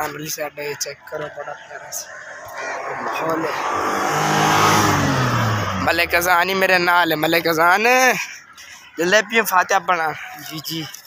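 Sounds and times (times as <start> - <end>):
vehicle passing by: 2.1 - 6.7.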